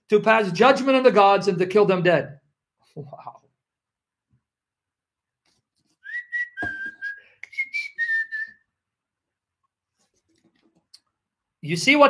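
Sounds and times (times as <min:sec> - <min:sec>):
man whistling: 0:06.0 - 0:08.8.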